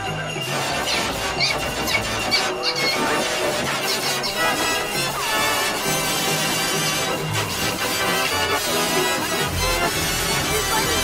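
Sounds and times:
music: 0.0s - 11.0s
short high squeals: 0.6s - 5.6s.

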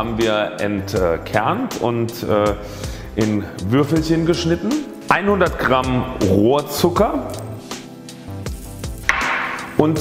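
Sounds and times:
soft background music: 0.0s - 10.0s
sugar pouring into steel bowl: 7.5s - 10.0s.

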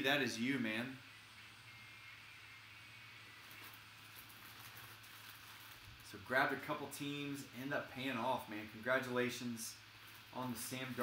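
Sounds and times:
low room hum: 0.0s - 11.0s
plastic bag crinkling: 3.4s - 6.7s, 10.0s - 11.0s.

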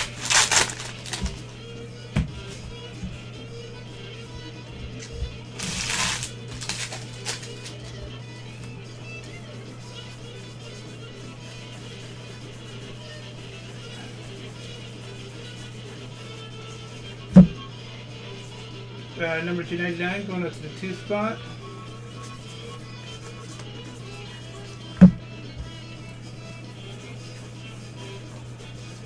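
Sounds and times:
cards rustling: 0.0s - 1.4s, 5.6s - 8.0s
quiet background music: 0.0s - 29.0s.

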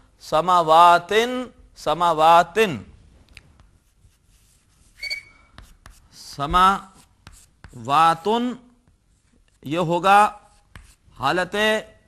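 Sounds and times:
chalk writing on blackboard: 3.6s - 7.9s, 10.3s - 11.2s
chalk squeak: 4.2s - 6.2s
light chalk taps: 5.5s - 7.8s, 8.8s - 9.6s, 10.5s - 11.0s.

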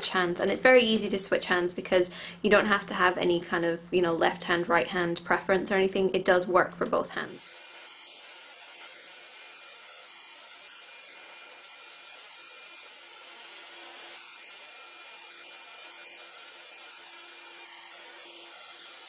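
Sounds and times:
hot air brush blowing: 7.3s - 19.0s.

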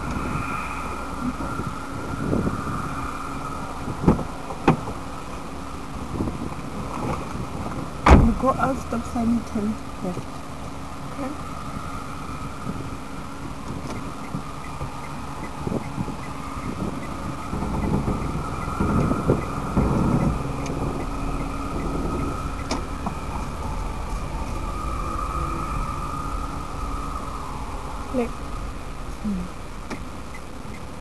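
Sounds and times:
car engine running inside cabin: 12.6s - 24.8s
faint regular ticking: 13.9s - 22.8s.

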